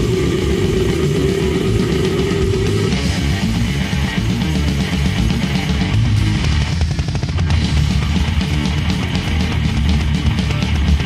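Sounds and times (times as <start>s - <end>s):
dense drumming: 0.0s - 11.0s
distorted metal guitars: 0.0s - 11.0s.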